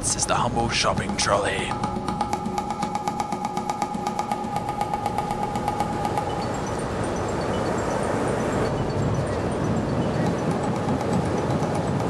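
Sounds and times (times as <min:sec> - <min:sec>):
steady tone with fast ticking: 0:00.0 - 0:12.0.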